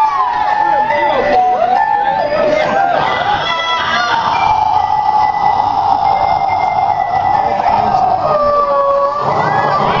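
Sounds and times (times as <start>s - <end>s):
high steady tone: 0.0s - 10.0s.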